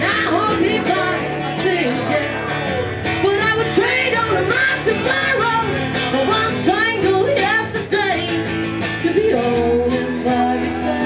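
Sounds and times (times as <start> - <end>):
guitar with sliding melody notes: 0.0 - 11.0
woman singing: 0.0 - 11.0.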